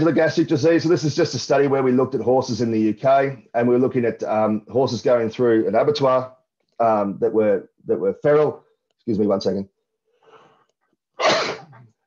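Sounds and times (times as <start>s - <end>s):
short breath in: 10.2s - 10.7s
man coughing or sneezing: 11.2s - 11.7s.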